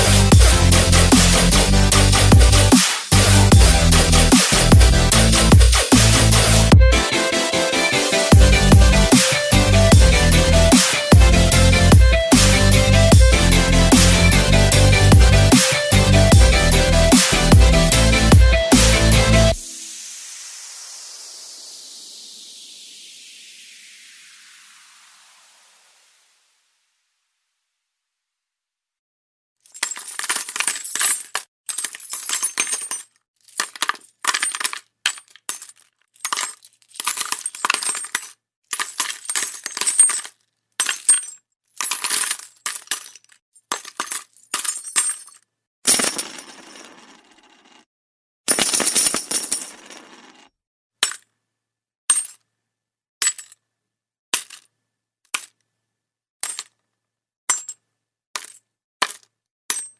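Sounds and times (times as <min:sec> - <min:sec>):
coins clinking: 0:29.7 - 0:47.8, 0:48.5 - 0:50.5, 0:52.1 - 0:52.5, 0:56.4 - 0:56.7.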